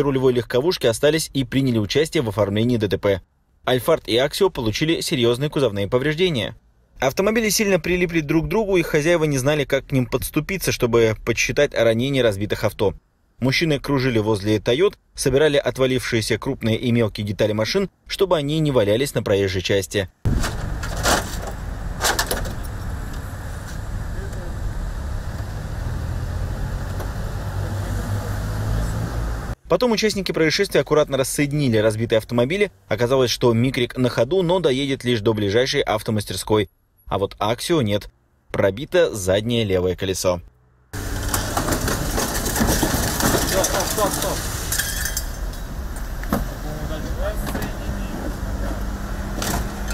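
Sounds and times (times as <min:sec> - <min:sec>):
vehicle engine rumbling: 0:20.1 - 0:29.6, 0:39.3 - 0:49.9
men talking: 0:43.2 - 0:44.5, 0:46.4 - 0:48.8.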